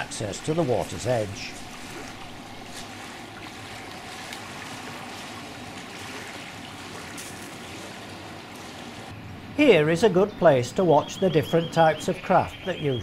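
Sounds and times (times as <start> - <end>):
small waves lapping: 0.0 - 9.1.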